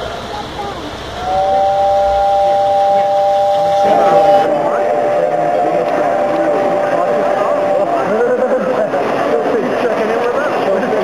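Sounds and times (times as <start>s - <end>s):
model train whistle: 1.2s - 8.8s.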